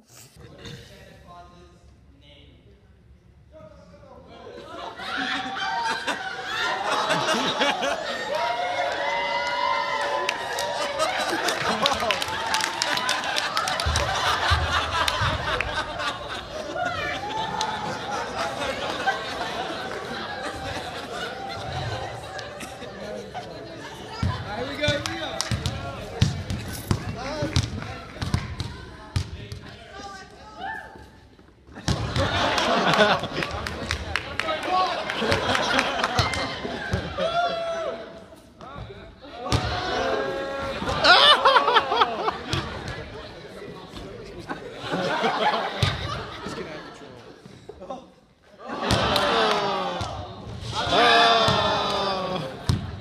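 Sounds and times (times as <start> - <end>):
audience laughing: 4.3 - 8.9, 10.1 - 26.2, 31.8 - 38.2, 39.7 - 52.7
men's voices: 48.8 - 53.0.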